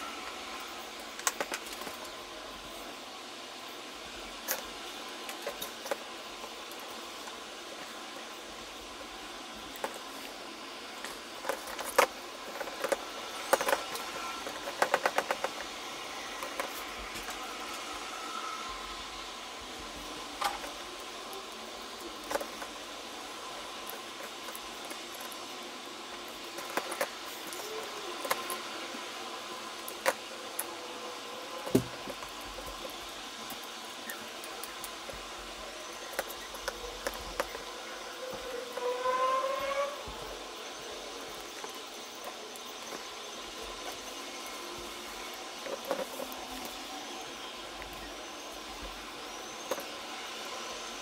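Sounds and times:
steady background hiss: 0:00.0 - 0:51.0
small parts clicking and tapping: 0:00.1 - 0:02.3, 0:04.3 - 0:17.9, 0:20.0 - 0:28.7, 0:29.6 - 0:30.9, 0:31.6 - 0:40.2, 0:41.2 - 0:51.0
wood rubbing on plastic squeak: 0:38.4 - 0:40.1.

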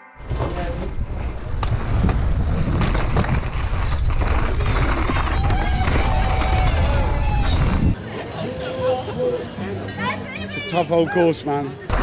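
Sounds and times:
wind buffeting microphone: 0:00.2 - 0:08.0
mountain bike rattling: 0:00.2 - 0:09.1.

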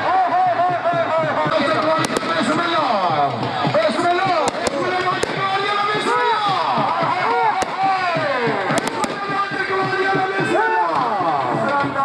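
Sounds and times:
crowd of men shouting: 0:00.0 - 0:12.0
firecrackers banging: 0:00.5 - 0:12.0.

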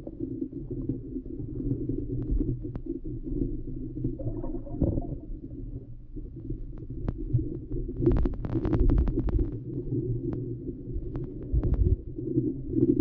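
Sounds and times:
muffled underwater river rumble: 0:00.0 - 0:13.0
sharp underwater clicks: 0:08.0 - 0:12.0.

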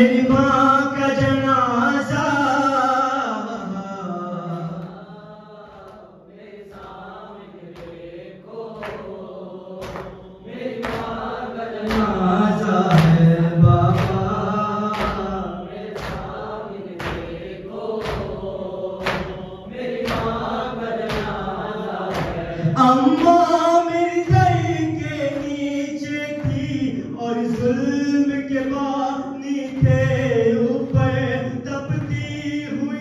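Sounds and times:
men chanting a lament: 0:00.0 - 0:33.0.

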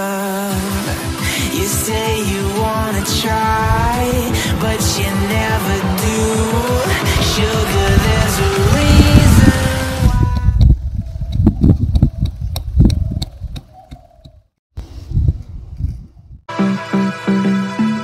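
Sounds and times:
pop song: 0:00.0 - 0:10.7.

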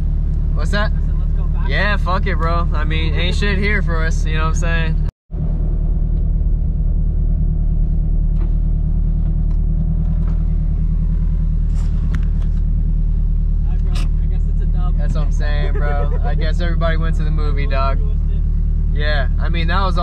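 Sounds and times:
car engine droning at low revs: 0:00.0 - 0:20.0.

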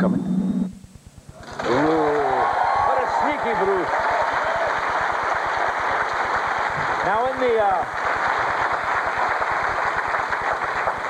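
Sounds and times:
audience applauding: 0:01.4 - 0:11.0.

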